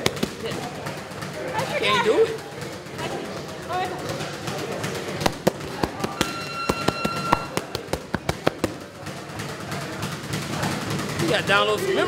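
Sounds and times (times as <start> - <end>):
boxing gloves hitting punch mitts: 0.0 - 1.0, 4.1 - 10.6
steady high tone: 6.2 - 7.6.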